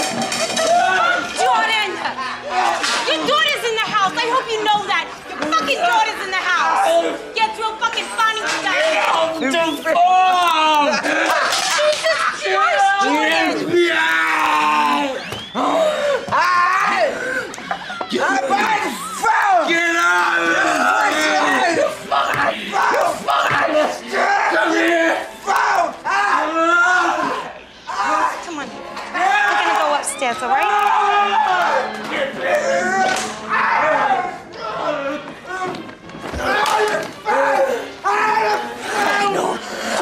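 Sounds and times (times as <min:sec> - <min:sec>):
men grunting and yelling: 0:00.4 - 0:03.5, 0:08.7 - 0:40.0
men's slurred voices: 0:08.0 - 0:28.4, 0:31.2 - 0:40.0.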